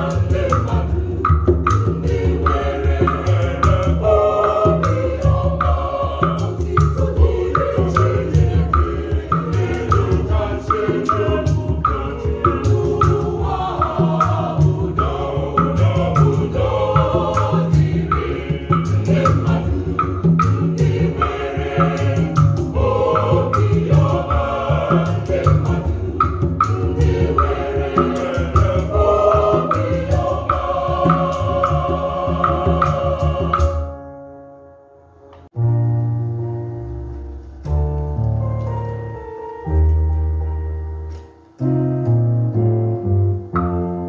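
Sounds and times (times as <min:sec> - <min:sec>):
hand drum: 0:00.0 - 0:34.0
choir singing in parts: 0:00.0 - 0:34.2.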